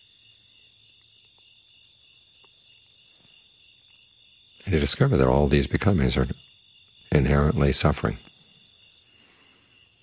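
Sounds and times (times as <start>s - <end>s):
crickets chirring: 0.0s - 10.0s
faint ticks: 0.9s - 4.7s.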